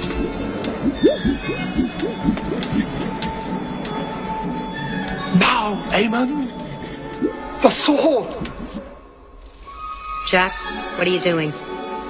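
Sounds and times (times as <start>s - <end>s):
rope pulley squeaking: 0.0s - 5.3s
film score music: 0.0s - 12.0s.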